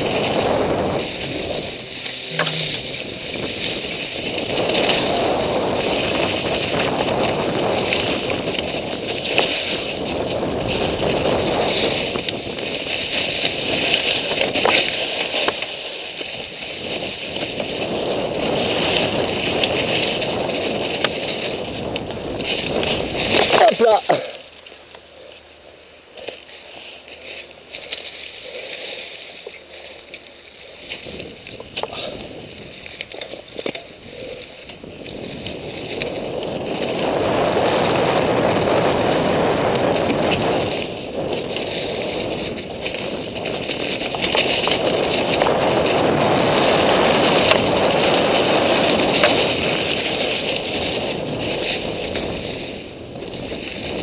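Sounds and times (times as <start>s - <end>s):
wind rushing over camera: 0.0s - 26.4s, 27.1s - 54.0s
bike rattling over bumps: 0.0s - 54.0s
bike tyres rolling through leaves: 0.0s - 54.0s
faint rustling: 0.0s - 54.0s.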